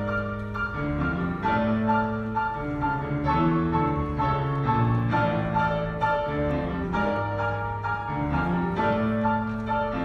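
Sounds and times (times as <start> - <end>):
piano duet: 0.0 - 10.0.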